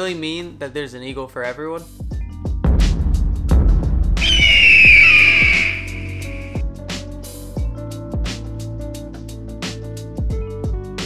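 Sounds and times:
background music with steady beat: 0:00.0 - 0:11.0
bird of prey screech: 0:04.2 - 0:06.6.

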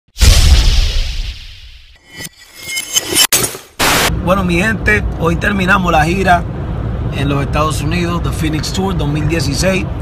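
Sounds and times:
deep boom: 0:00.2 - 0:01.8.

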